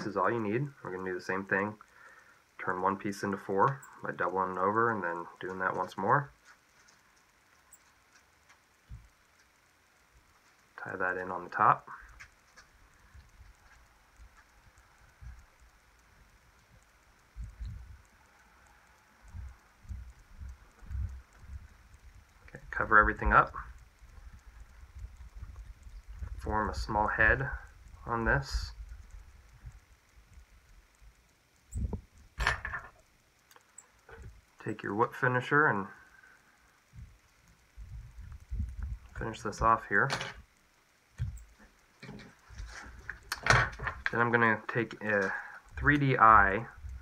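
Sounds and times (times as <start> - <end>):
faint ticks: 0.0 - 47.0.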